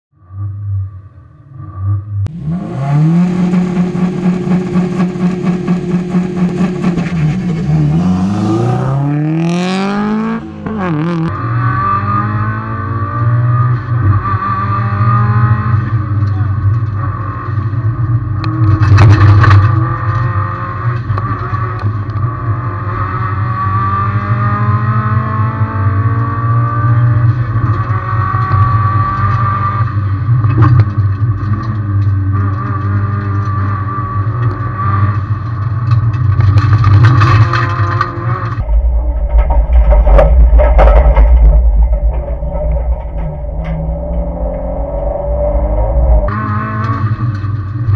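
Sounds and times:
car engine revving: 1.5s - 47.9s
rush of noise: 38.6s - 47.9s.

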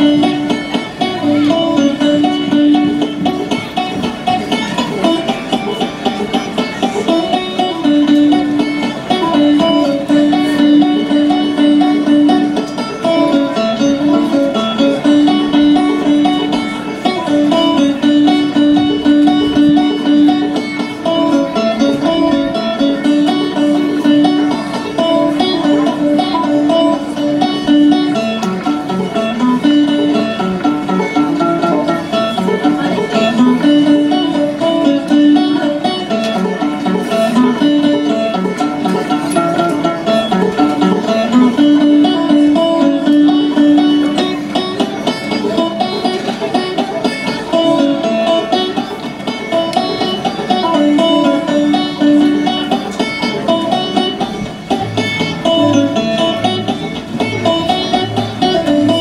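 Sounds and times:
banjo playing: 0.0s - 59.0s.

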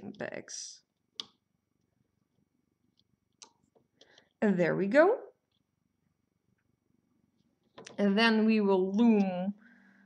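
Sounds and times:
woman speaking: 0.0s - 0.9s, 4.4s - 5.4s, 7.9s - 9.6s.

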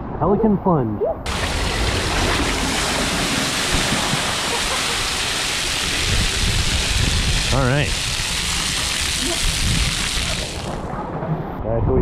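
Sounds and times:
water pouring onto wooden deck: 1.3s - 10.9s.

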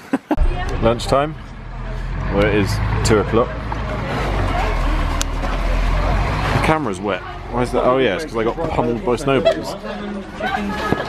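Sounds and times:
vehicle engine rumbling: 0.4s - 11.0s.

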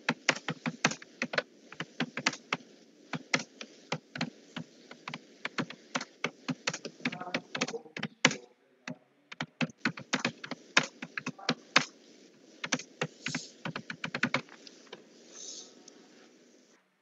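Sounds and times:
typing on computer keyboard: 0.1s - 11.9s, 12.6s - 14.6s.

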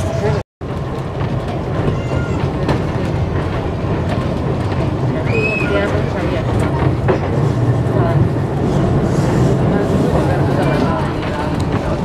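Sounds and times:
tram wheels rumbling on track: 0.0s - 12.0s.

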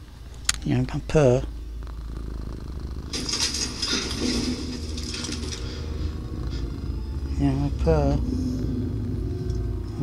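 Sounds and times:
cat purring: 0.0s - 10.0s.

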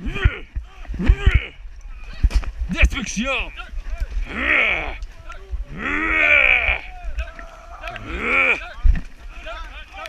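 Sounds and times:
people yelling short cries: 3.6s - 10.0s.

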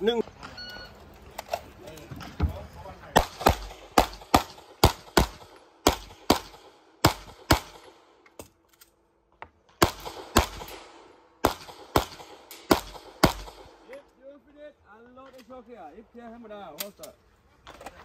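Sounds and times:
pistol shots: 3.1s - 8.1s, 9.8s - 13.8s.

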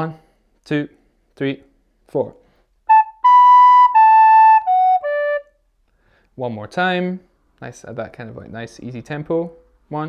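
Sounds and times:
recorder notes: 2.9s - 5.6s.

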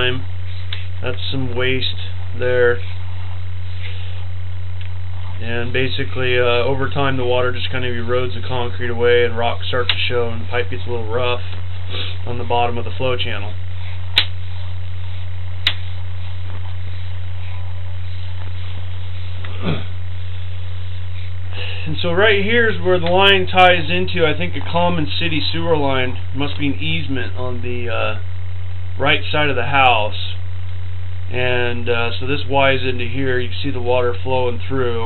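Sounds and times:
faint hiss: 0.0s - 35.0s
low electrical hum: 0.0s - 35.0s
sharp click: 14.1s - 14.4s, 15.6s - 15.8s.

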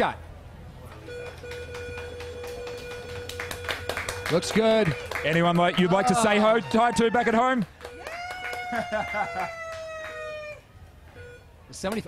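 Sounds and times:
woman's high cry of excitement: 8.0s - 10.6s.

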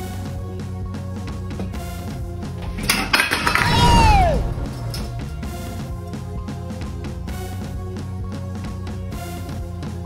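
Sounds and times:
metal flask clattering on tiles: 2.6s - 3.8s, 4.6s - 5.5s.

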